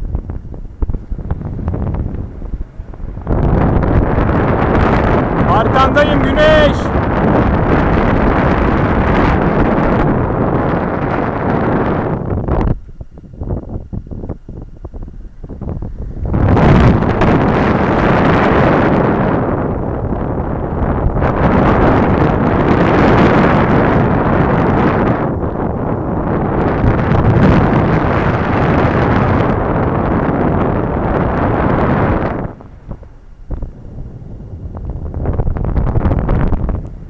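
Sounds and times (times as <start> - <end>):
wind buffeting microphone: 0.0 - 37.0.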